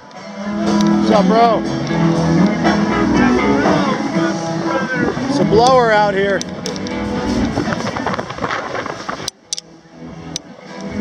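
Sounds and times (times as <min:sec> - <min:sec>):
band music: 0:00.0 - 0:11.0
wind buffeting microphone: 0:01.7 - 0:09.5.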